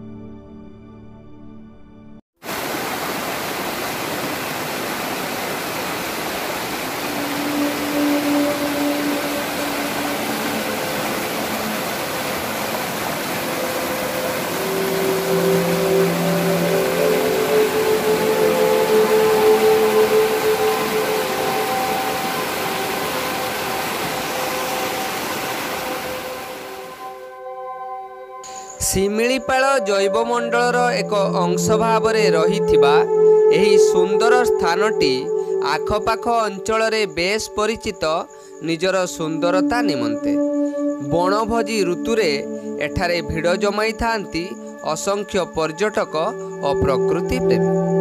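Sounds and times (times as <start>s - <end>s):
river rushing over rocks: 2.4s - 27.0s.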